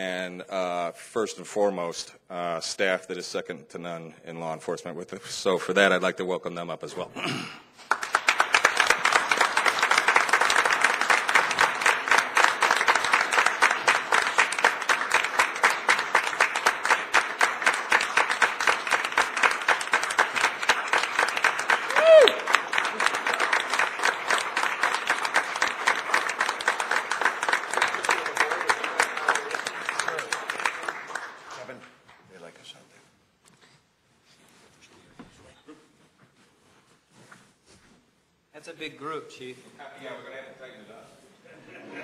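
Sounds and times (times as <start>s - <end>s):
audience applauding: 7.8s - 32.1s
falling whoop: 21.9s - 22.5s.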